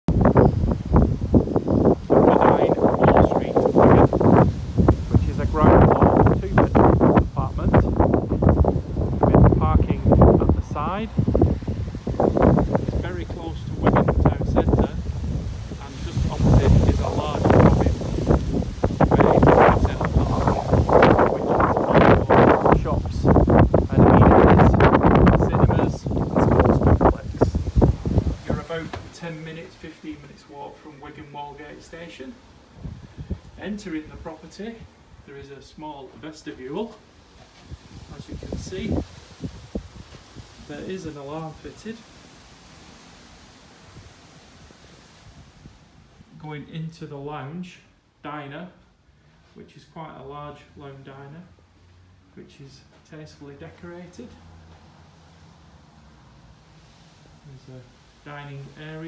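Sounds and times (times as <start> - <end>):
wind rumbling on microphone: 0.0 - 30.3, 32.5 - 35.3, 36.8 - 46.4
person talking: 2.2 - 4.2, 5.1 - 8.1, 9.2 - 11.2, 13.0 - 15.0, 15.8 - 18.1, 19.0 - 27.6, 28.4 - 32.4, 38.1 - 39.1, 40.7 - 42.1, 46.3 - 48.8, 52.4 - 54.4, 57.5 - 59.0.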